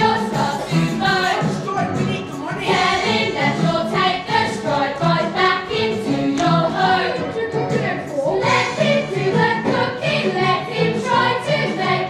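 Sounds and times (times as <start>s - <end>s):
young voices singing together: 0.0s - 1.6s, 2.5s - 12.0s
instrumental accompaniment with beat: 0.0s - 12.0s.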